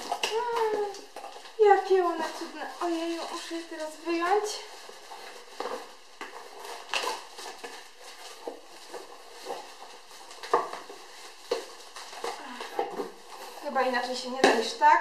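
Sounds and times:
cardboard box rustling and scraping: 0:00.0 - 0:14.4.

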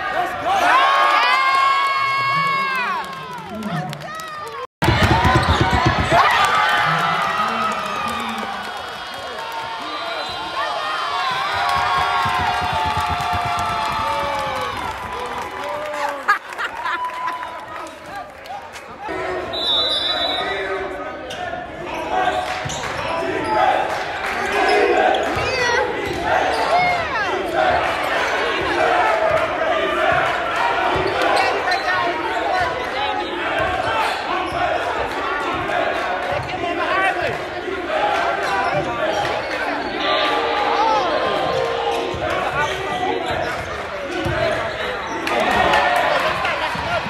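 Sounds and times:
chatter of many spectators: 0:00.0 - 0:47.0
basketball bouncing on wooden floor: 0:04.8 - 0:06.2.

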